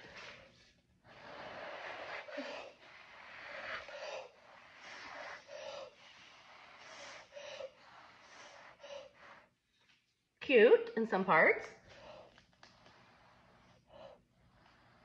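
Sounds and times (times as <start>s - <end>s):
hissing breath puffs: 0.0s - 9.7s, 11.8s - 15.0s.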